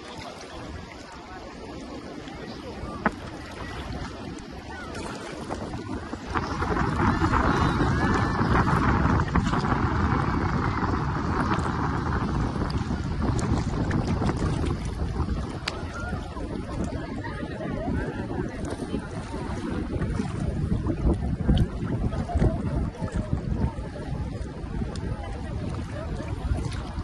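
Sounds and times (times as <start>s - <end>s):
faint voices of bathers: 0.0s - 27.0s
sea water sloshing: 0.0s - 27.0s
water splashes: 0.0s - 27.0s
wind buffeting microphone: 0.0s - 27.0s.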